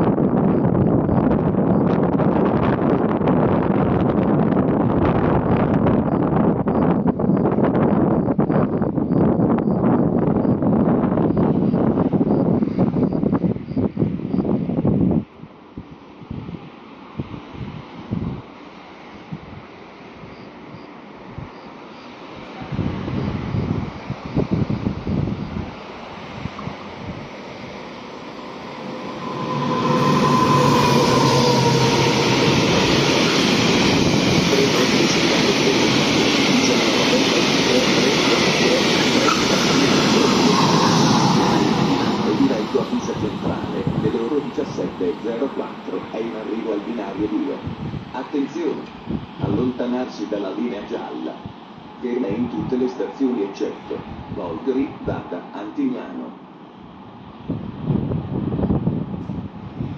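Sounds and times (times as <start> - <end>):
wind buffeting microphone: 0.0 - 18.6, 22.6 - 49.9, 54.0 - 55.2, 56.9 - 59.9
freight train rolling past: 0.0 - 55.6.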